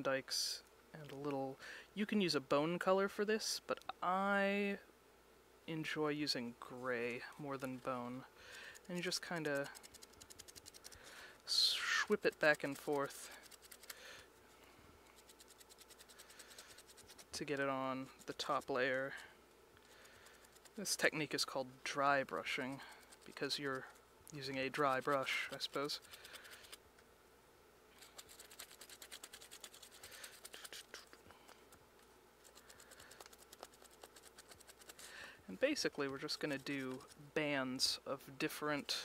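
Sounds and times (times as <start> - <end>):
paintbrush scratching on foam: 7.6 - 13.9, 15.1 - 26.8, 28.0 - 31.6, 32.4 - 37.9.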